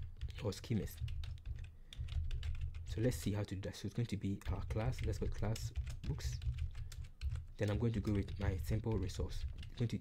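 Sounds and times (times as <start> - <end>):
keyboard typing: 0.0 - 10.0.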